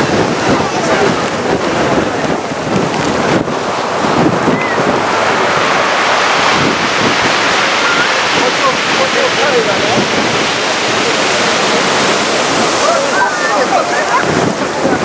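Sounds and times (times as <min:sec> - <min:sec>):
surf breaking against sea wall: 0:00.0 - 0:15.0
wind buffeting microphone: 0:00.0 - 0:15.0.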